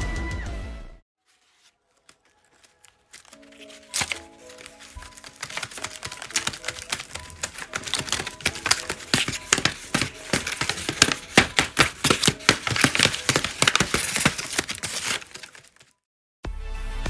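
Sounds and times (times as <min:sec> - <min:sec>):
paper crinkling: 0:01.2 - 0:16.0
crisp paper taps and clicks: 0:02.0 - 0:15.9.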